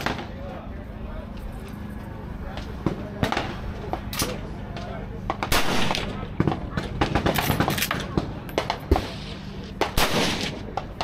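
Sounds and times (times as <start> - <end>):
sharp gunshots: 0.0 - 0.4, 2.8 - 4.4, 5.3 - 11.0.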